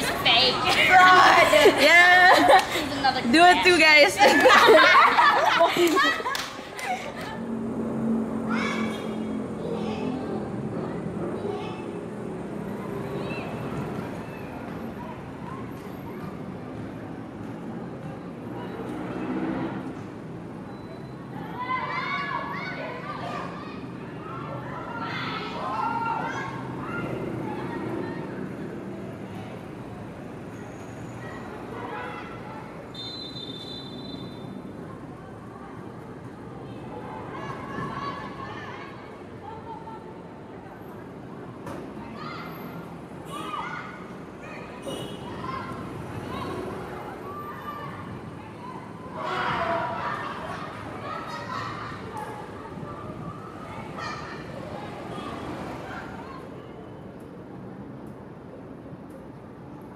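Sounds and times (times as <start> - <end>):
people shouting and calling out: 21.4 - 28.6, 42.0 - 56.6.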